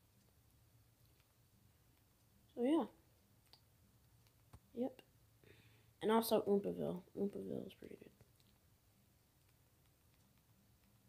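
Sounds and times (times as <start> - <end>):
faint low hum: 0.0 - 11.0
small clicks: 1.0 - 2.4, 3.4 - 4.7, 7.8 - 8.7, 9.4 - 11.0.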